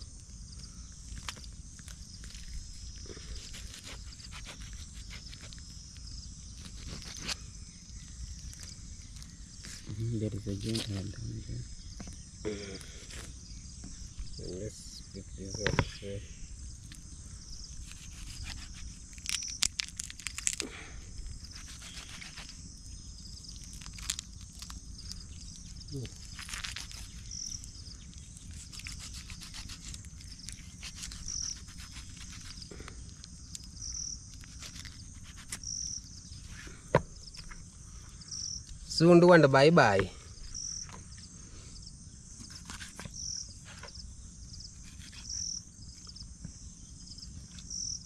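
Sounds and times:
insects chirping: 0.0 - 48.0
knife cracking through chicken bones: 26.3 - 27.2, 28.6 - 32.6.

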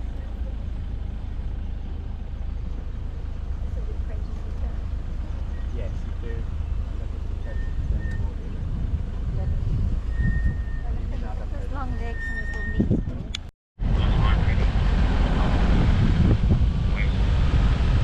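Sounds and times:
vehicle engine and road rumble: 0.0 - 18.0.

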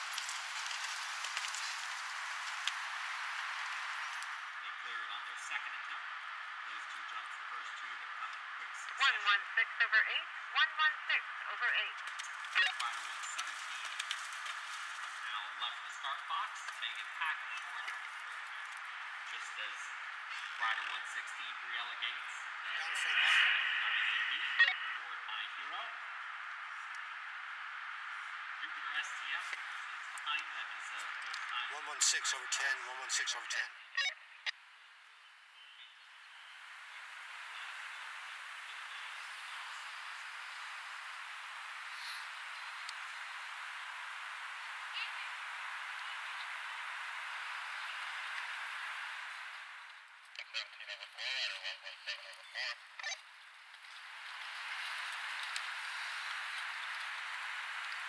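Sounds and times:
faint voices: 0.0 - 34.5, 35.6 - 53.3
two-way radio hiss: 0.0 - 58.0.

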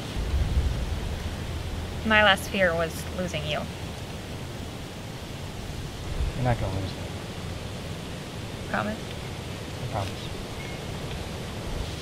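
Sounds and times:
outdoor rumble and hiss: 0.0 - 12.0.

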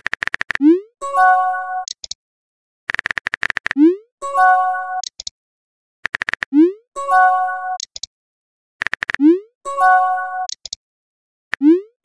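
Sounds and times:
sharp keyboard-like clicks: 0.0 - 0.6, 1.8 - 2.2, 2.9 - 3.8, 5.0 - 5.3, 6.0 - 6.5, 7.8 - 8.1, 8.8 - 9.2, 10.5 - 10.8.

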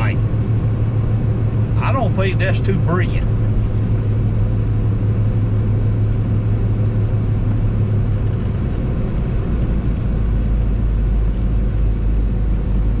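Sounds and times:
truck engine drone: 0.0 - 13.0.

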